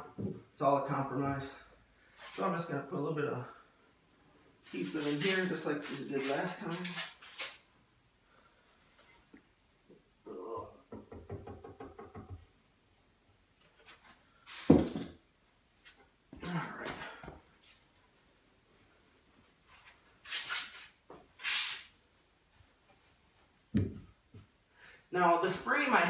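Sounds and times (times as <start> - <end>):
insulation rustling and scuffing: 4.7 - 7.7, 15.8 - 24.6.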